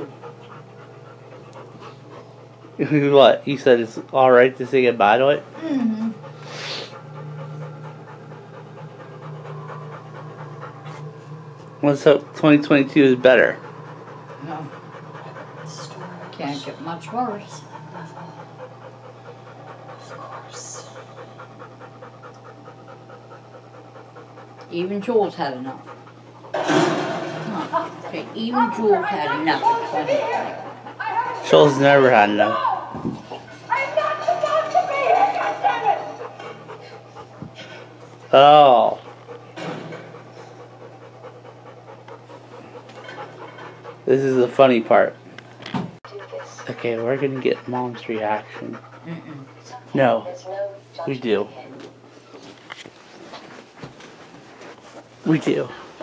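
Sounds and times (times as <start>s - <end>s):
dog panting: 0.0s - 56.0s
steady low hum: 0.0s - 56.0s.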